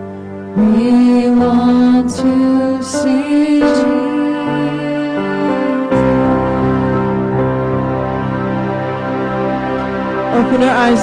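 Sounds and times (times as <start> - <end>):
digital keyboard chords: 0.0 - 11.0
woman singing worship song: 0.6 - 8.0.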